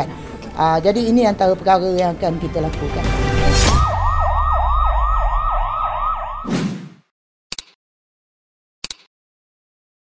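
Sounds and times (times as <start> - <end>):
low rumble: 3.2 - 6.4
whoosh: 3.3 - 7.0
siren yelping: 3.6 - 6.5.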